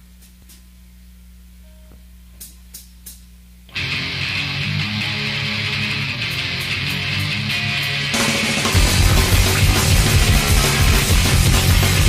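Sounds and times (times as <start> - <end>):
low steady hum: 0.0 - 3.8
distorted electric guitar: 3.7 - 12.0
heavy metal rock band: 3.7 - 12.0.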